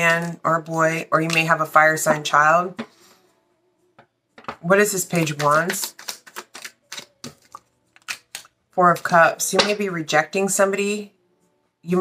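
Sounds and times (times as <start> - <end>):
cards being shuffled by hand: 5.1 - 8.5.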